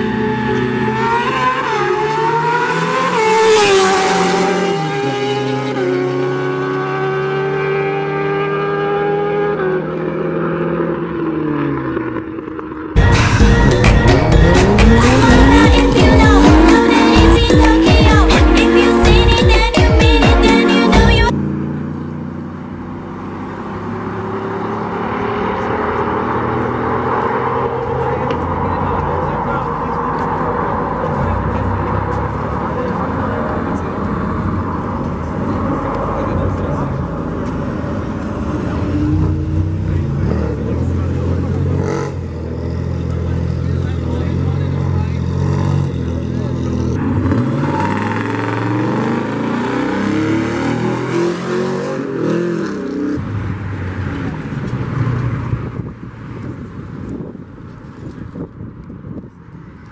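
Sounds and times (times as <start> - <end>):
car and truck engines revving: 0.0 - 19.4, 20.4 - 59.9.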